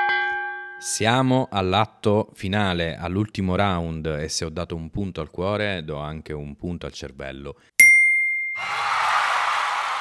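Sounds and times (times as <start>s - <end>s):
boxing bell ringing: 0.0s - 0.9s, 7.8s - 8.6s.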